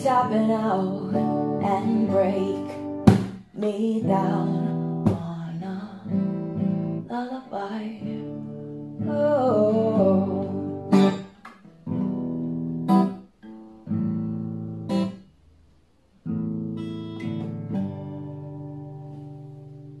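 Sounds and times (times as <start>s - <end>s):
acoustic guitar strumming chords: 0.0s - 15.3s, 16.2s - 20.0s.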